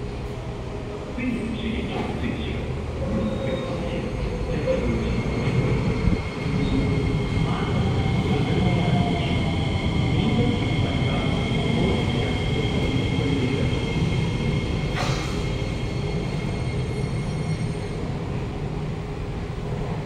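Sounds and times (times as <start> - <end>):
train wheels rumbling on track: 0.0 - 20.0
high-pitched train whine: 0.1 - 18.5.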